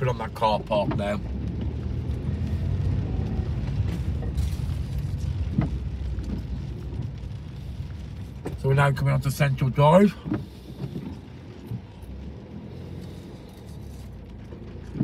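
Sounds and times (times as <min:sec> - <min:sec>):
car engine and tyres on wet road: 0:00.0 - 0:15.0.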